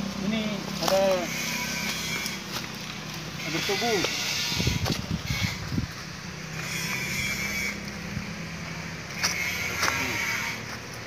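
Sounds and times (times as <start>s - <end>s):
outdoor background noise: 0.0s - 11.0s
vehicle engine hum: 0.0s - 11.0s.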